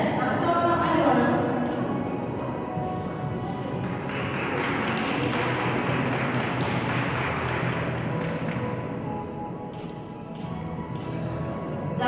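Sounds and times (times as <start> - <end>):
background music: 0.0 - 12.0
audience applauding: 3.8 - 8.6.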